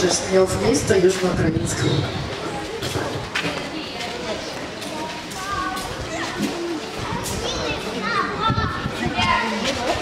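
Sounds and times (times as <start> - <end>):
children chattering and calling out: 0.1 - 10.0.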